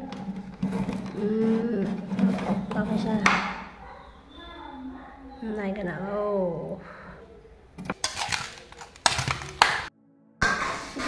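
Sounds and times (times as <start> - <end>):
metal spoon scraping a pan: 0.0 - 3.9, 7.8 - 11.0
background music: 7.5 - 11.0.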